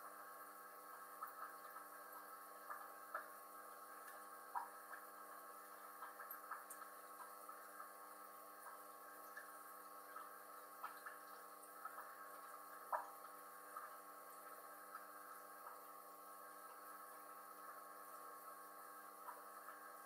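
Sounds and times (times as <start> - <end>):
aquarium equipment humming: 0.0 - 20.0
water dripping: 0.2 - 20.0.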